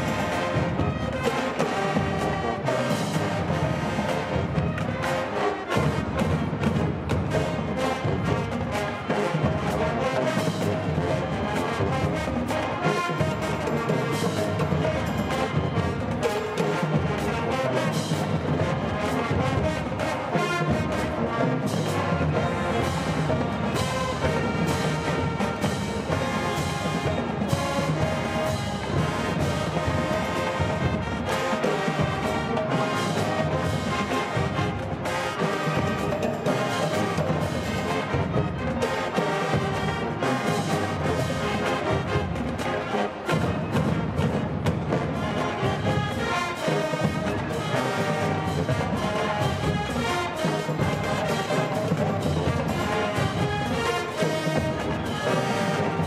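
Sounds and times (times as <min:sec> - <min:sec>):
brass section playing: 0:00.0 - 0:56.0
marching drums beat: 0:00.0 - 0:56.0.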